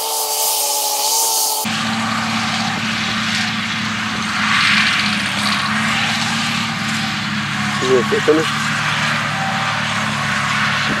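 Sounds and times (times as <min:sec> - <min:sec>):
mower cutting grass: 0:00.0 - 0:11.0
tractor engine running: 0:01.0 - 0:11.0.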